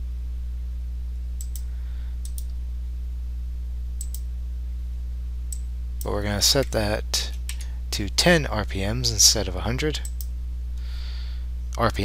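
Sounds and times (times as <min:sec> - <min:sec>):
low electrical hum: 0:00.0 - 0:12.0
computer mouse clicks: 0:01.4 - 0:02.5, 0:04.0 - 0:04.3.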